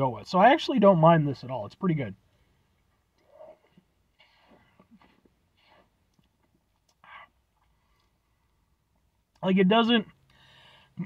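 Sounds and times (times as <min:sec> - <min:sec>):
soft breaths: 0:02.2 - 0:06.2, 0:10.2 - 0:11.0.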